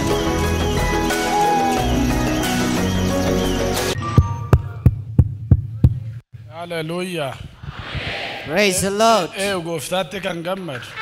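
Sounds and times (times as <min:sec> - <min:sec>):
evenly spaced low thumps: 0:04.1 - 0:06.5
man's voice: 0:08.5 - 0:10.8.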